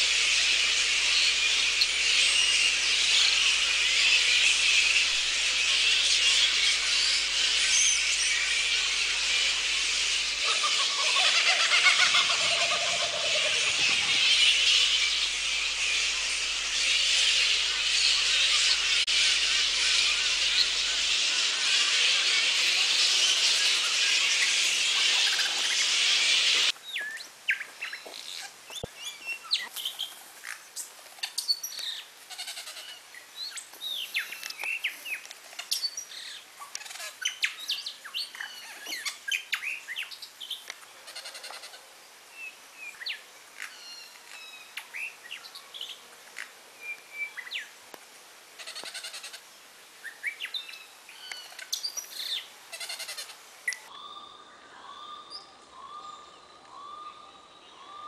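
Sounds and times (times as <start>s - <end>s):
birds chirping and calling: 0.0s - 30.1s, 31.2s - 41.9s, 50.1s - 58.0s.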